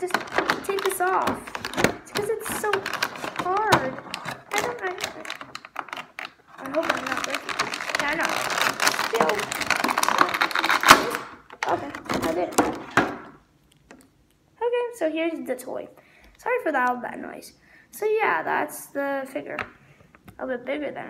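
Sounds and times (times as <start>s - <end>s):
plastic packaging crinkling: 0.0s - 13.3s
sharp loud plastic crack: 0.0s - 13.4s.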